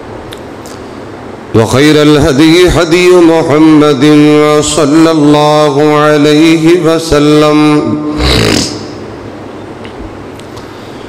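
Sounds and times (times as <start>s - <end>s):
sound system hum and hiss: 0.0s - 11.0s.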